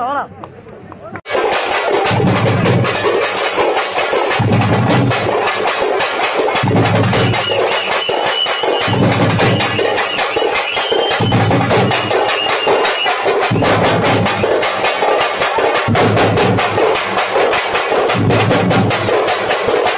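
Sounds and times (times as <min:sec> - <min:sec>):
fast stick drumming: 0:01.3 - 0:19.9
heavy low drum beats: 0:01.3 - 0:19.9.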